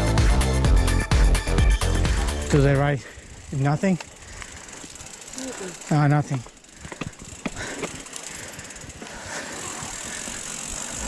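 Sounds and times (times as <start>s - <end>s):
bike rattling: 0.1s - 11.0s
bike tyres crunching on dirt: 2.1s - 11.0s.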